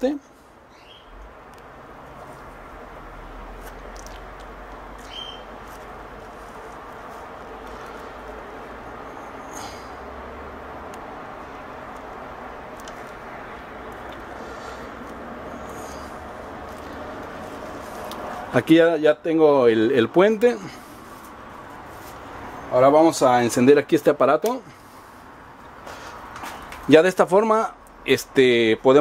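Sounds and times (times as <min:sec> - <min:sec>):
background hiss and hum: 0:00.0 - 0:27.0
faint wire clicks: 0:11.9 - 0:13.2.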